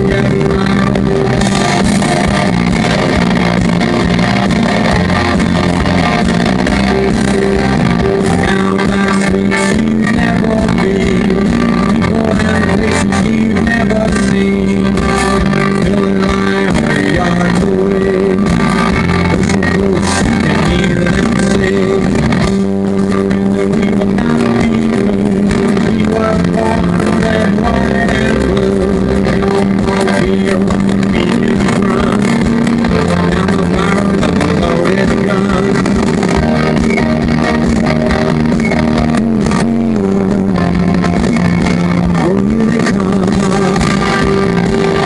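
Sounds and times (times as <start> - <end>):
live rock band playing: 0.0 - 45.0
sustained electric guitar chords: 0.0 - 45.0.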